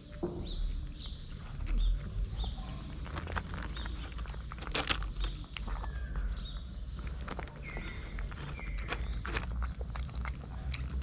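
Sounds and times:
cat crunching kibble: 0.8 - 11.0.

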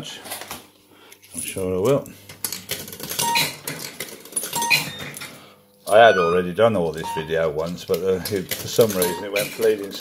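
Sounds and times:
short electronic beeps: 3.2 - 3.6, 4.6 - 5.2, 5.9 - 7.4, 9.0 - 9.5.

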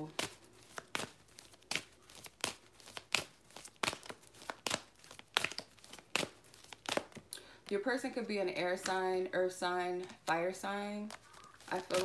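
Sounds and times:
cards being shuffled: 0.0 - 9.2, 9.9 - 12.0.

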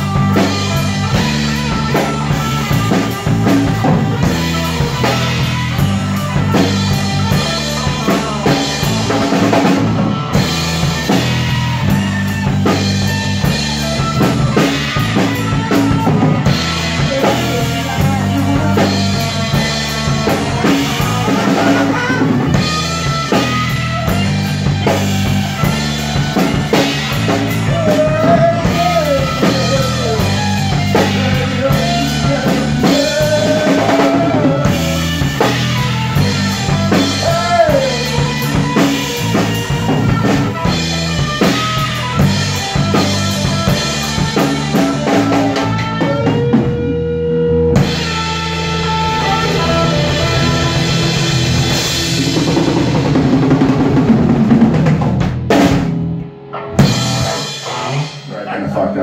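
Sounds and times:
drum kit: 0.0 - 59.0
rock band playing live: 0.0 - 59.0.

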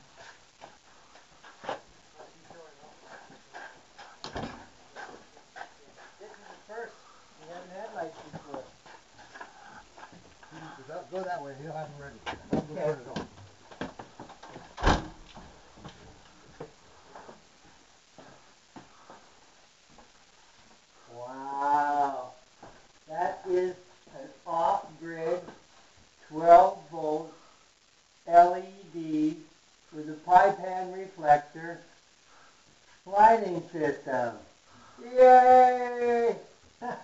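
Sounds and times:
long drawn-out voiced exclamation: 21.1 - 22.4, 35.0 - 36.5.

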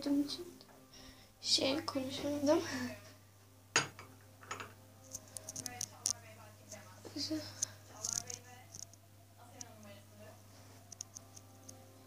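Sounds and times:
quiet speech: 5.4 - 10.7
small clicks: 8.0 - 9.0.

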